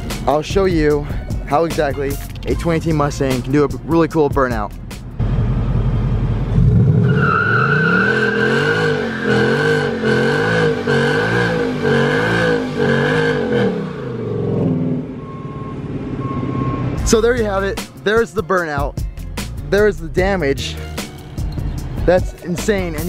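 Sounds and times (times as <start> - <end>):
car engine revving: 5.1 - 17.1
tyres squealing on concrete: 7.0 - 9.8.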